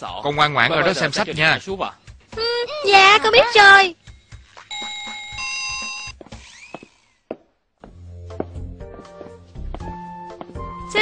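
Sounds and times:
two-tone doorbell chime: 4.7s - 6.1s.

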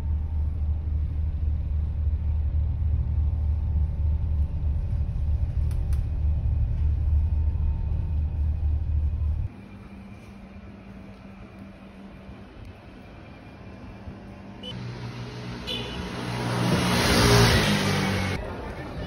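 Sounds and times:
faint hum: 0.0s - 15.4s
ferry engine rumble: 0.0s - 19.0s.

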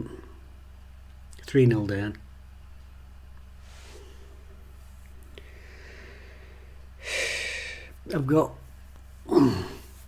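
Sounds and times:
man sighing: 5.4s - 7.9s, 9.2s - 10.0s.

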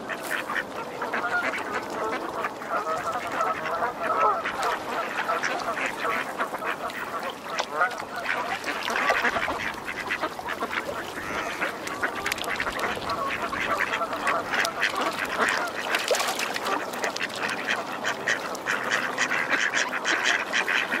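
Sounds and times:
waterfowl calling: 0.0s - 21.0s.

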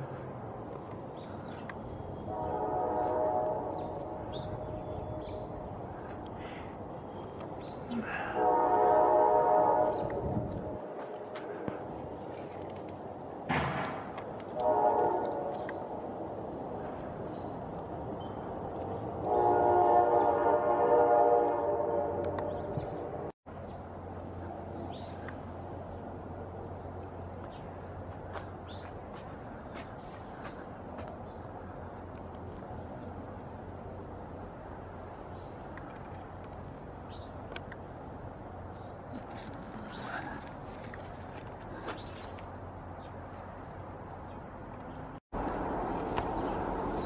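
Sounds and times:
horn chord: 2.3s - 5.6s, 8.3s - 10.8s, 19.2s - 22.7s.

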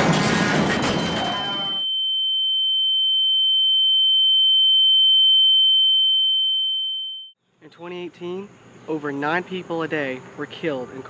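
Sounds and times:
crash noise: 0.0s - 1.8s
high-pitched electronic tone: 0.6s - 2.0s.

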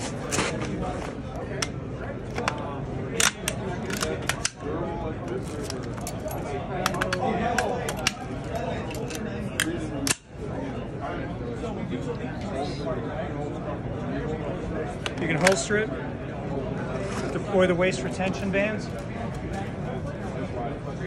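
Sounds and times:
crowd chatter: 0.0s - 21.0s
rifle handling clicks: 1.6s - 10.3s, 15.0s - 15.7s.

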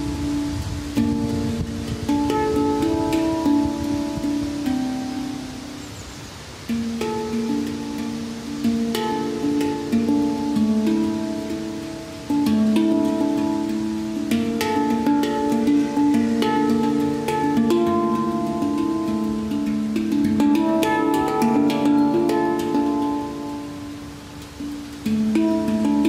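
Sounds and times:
handpan melody: 0.0s - 26.0s.

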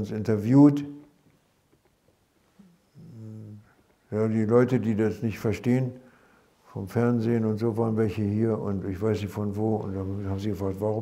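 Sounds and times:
man talking: 0.0s - 1.0s, 3.0s - 6.0s, 6.7s - 11.0s
man humming hesitation: 2.6s - 3.8s.

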